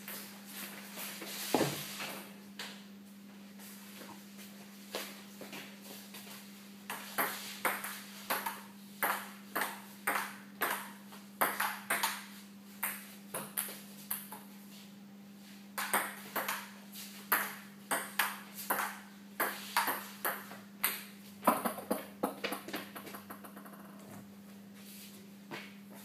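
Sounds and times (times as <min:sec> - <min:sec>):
table tennis ball clicking: 0:23.0 - 0:24.0.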